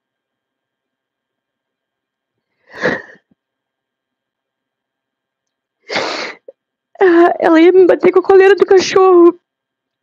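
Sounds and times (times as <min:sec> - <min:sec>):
sharp sobbing breath: 0:02.6 - 0:03.2, 0:05.9 - 0:06.5
woman crying: 0:02.7 - 0:03.2.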